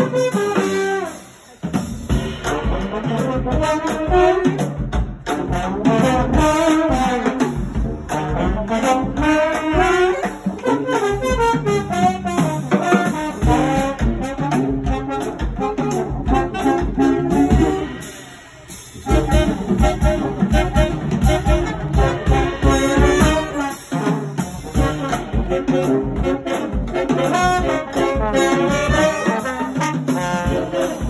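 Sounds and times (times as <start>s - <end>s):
brass band playing upbeat tune: 0.0s - 31.0s.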